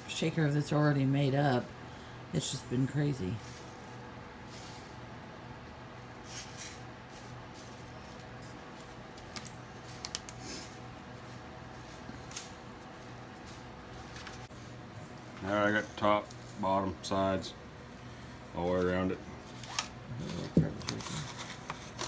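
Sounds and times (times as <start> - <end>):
steady low hum: 0.0 - 22.0
foil pan rustling and crinkling: 18.8 - 22.0.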